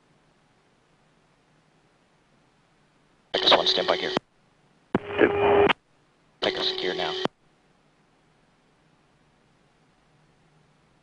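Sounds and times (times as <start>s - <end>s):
steady hum: 0.0s - 11.0s
cockpit radio transmissions: 3.4s - 4.2s, 5.0s - 5.8s, 6.4s - 7.3s.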